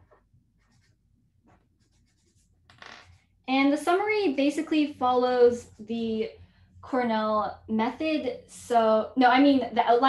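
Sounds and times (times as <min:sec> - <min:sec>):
pen scratching on paper: 0:00.0 - 0:03.2.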